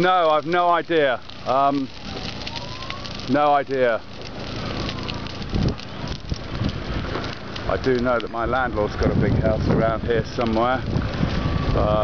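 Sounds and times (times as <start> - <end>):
fire crackling: 0.0 - 12.0
wind buffeting microphone: 4.6 - 12.0.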